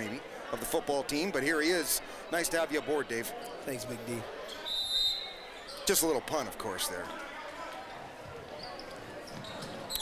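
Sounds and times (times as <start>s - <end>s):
sneakers squeaking: 7.9s - 10.0s.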